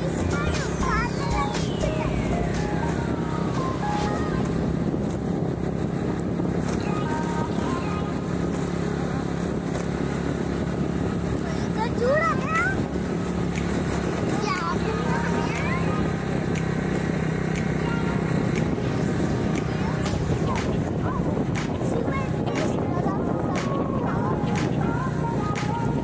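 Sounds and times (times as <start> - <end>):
vehicle engine and road noise: 0.0 - 26.0.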